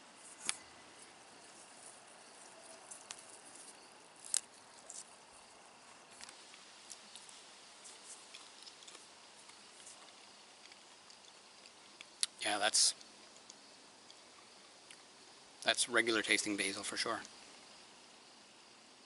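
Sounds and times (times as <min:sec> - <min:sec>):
faint hiss: 0:00.0 - 0:19.0
small clicks and ticks: 0:06.1 - 0:12.4.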